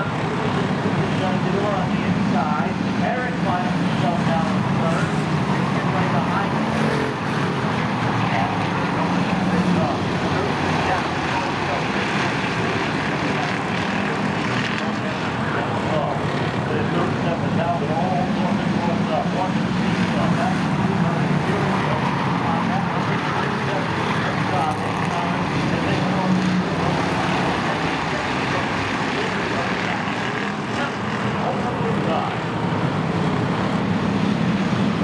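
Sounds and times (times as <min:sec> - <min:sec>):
people's voices: 0:00.0 - 0:32.6
race car engines droning: 0:00.0 - 0:35.0.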